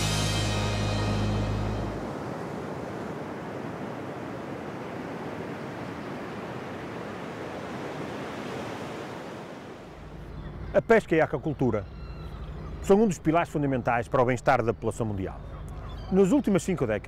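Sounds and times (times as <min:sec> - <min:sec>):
theme music with low notes: 0:00.0 - 0:02.1
ocean waves: 0:00.0 - 0:10.3.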